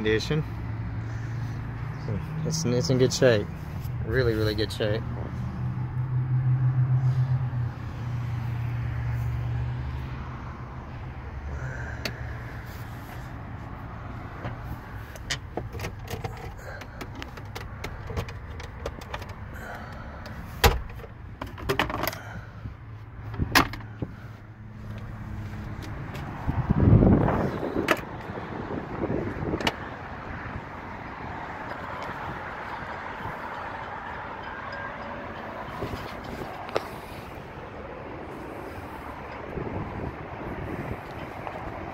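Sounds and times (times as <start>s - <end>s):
clicks and knocks of handling: 15.2s - 19.4s
car door thump: 20.6s - 21.0s.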